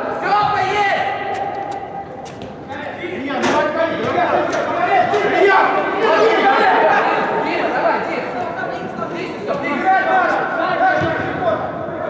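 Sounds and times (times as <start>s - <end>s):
voices shouting and talking: 0.0s - 12.0s.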